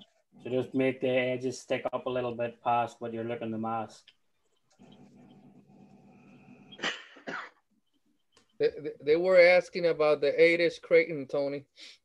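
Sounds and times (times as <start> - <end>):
person coughing: 6.8 - 7.6.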